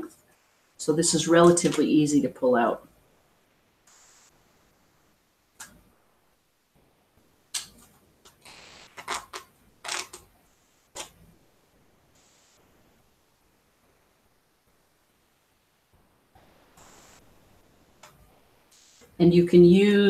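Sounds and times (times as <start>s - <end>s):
paper tearing: 8.9s - 10.2s.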